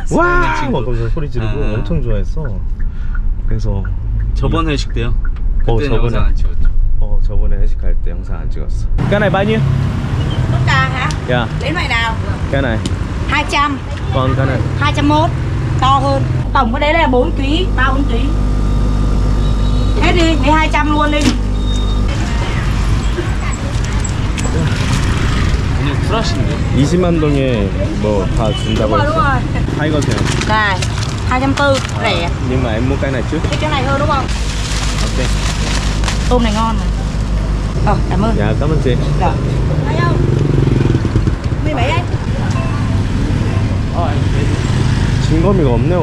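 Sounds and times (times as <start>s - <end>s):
low motor hum: 9.6s - 46.0s
woman speaking: 10.5s - 12.3s, 13.3s - 18.4s, 20.0s - 21.4s, 22.1s - 24.2s, 28.9s - 29.7s, 30.4s - 32.4s, 33.6s - 34.3s, 36.3s - 37.2s, 37.8s - 38.4s, 39.2s - 40.2s, 41.6s - 42.2s
scooter engine droning: 13.3s - 34.4s, 36.3s - 46.0s.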